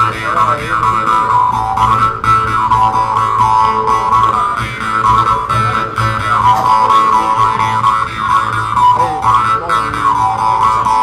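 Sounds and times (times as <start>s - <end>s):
mouth harps twanging polka: 0.0s - 11.0s.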